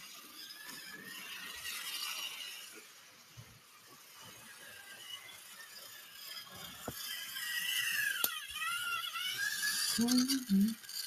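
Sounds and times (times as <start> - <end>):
toy train motor whining: 0.0 - 11.0.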